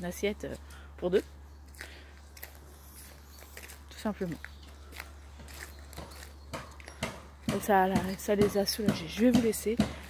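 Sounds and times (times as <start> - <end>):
faint footsteps: 0.4 - 10.0.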